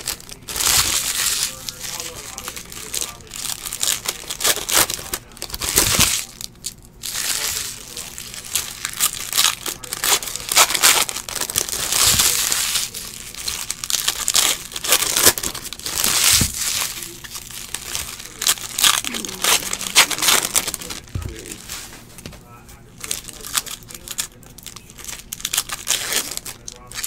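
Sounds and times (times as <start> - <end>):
foil wrappers tearing and crinkling: 0.0 - 27.0.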